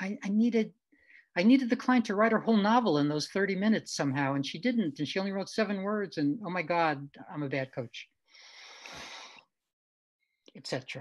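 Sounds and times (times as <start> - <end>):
faint breathy nasal exhale: 8.4 - 9.4.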